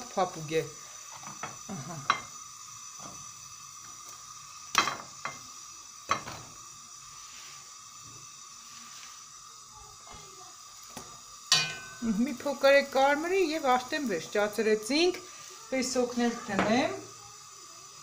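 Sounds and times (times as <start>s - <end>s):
dough sizzling in hot oil: 0.0s - 18.0s.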